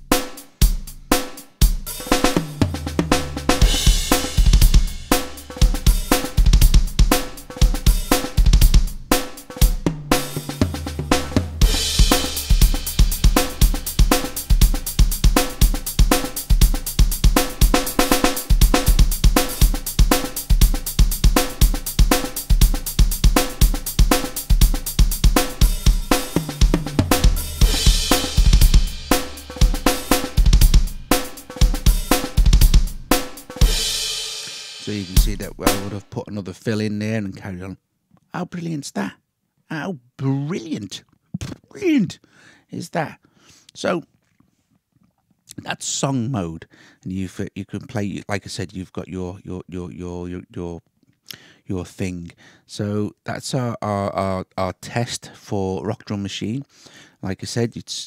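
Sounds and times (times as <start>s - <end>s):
programmed rock drum beat: 0.0s - 36.1s.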